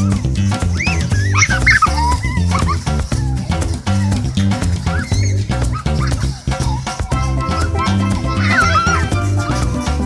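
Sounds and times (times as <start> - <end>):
upbeat latin-style music: 0.0 - 10.0
puppy yipping and whining: 0.8 - 4.2, 4.9 - 9.2.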